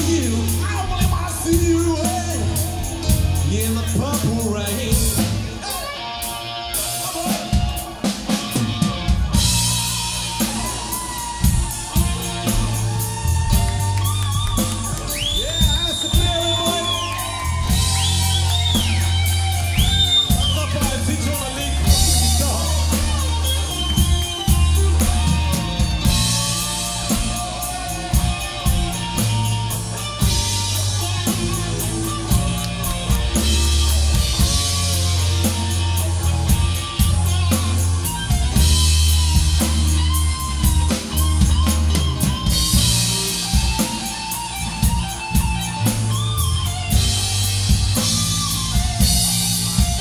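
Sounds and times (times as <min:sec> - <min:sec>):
bass guitar notes: 0:00.0 - 0:50.0
drum and cymbal strikes: 0:00.0 - 0:50.0
electric guitar: 0:00.0 - 0:50.0.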